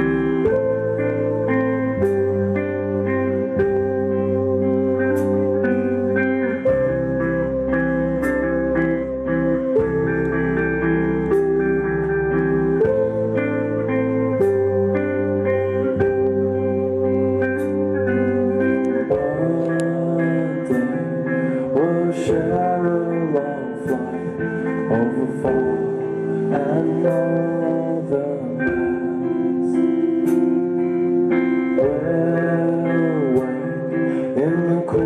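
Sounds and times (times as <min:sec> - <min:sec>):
electric guitars and bass chords: 0:00.0 - 0:35.0.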